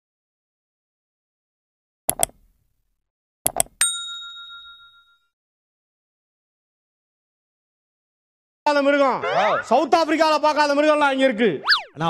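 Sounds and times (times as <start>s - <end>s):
mouse click sound effects: 2.1s - 2.5s, 3.5s - 3.8s
notification bell ding: 3.8s - 5.3s.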